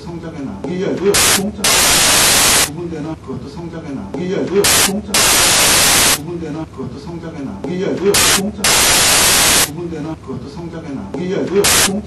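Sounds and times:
static hiss bursts: 0:01.1 - 0:02.7, 0:04.6 - 0:06.2, 0:08.1 - 0:09.7, 0:11.6 - 0:12.0.

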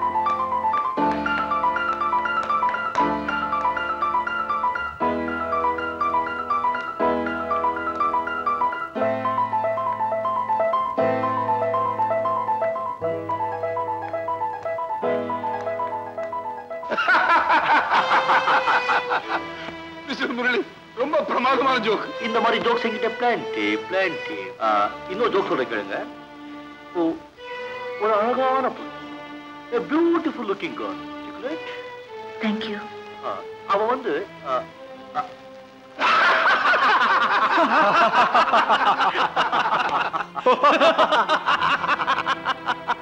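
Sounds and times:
soft background music: 0:00.0 - 0:43.0
person laughing heartily: 0:16.9 - 0:19.5, 0:36.0 - 0:43.0.

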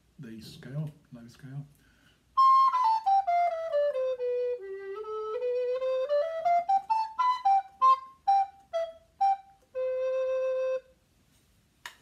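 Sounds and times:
recorder playing notes: 0:02.4 - 0:11.0.

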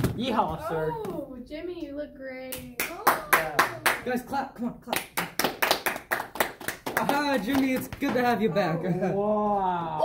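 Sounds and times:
people clapping: 0:02.5 - 0:08.5.

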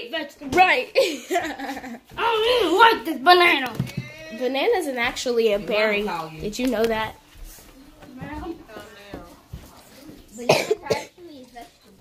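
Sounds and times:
person coughing: 0:10.4 - 0:11.2.

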